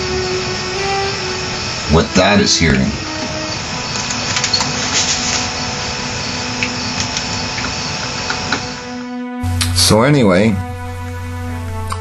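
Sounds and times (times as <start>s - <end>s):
steady hum and hiss: 0.0s - 12.0s.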